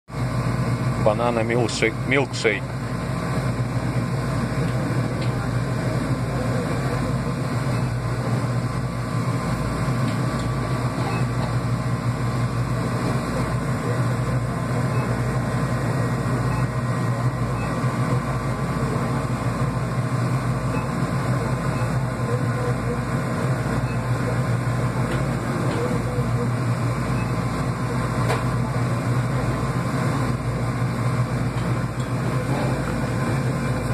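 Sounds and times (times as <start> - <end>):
drinks cooler humming: 0.1 - 33.9.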